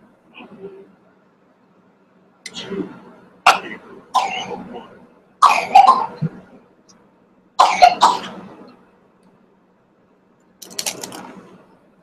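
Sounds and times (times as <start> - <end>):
person coughing: 3.5 - 4.8, 5.4 - 6.4, 7.6 - 8.4.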